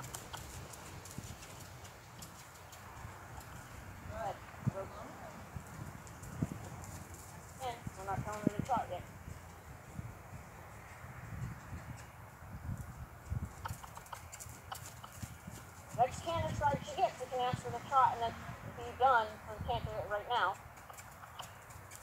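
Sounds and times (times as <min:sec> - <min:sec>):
horse hoofbeats on grass: 0:00.0 - 0:04.7, 0:05.3 - 0:18.2, 0:19.7 - 0:22.0
person speaking: 0:16.0 - 0:20.6.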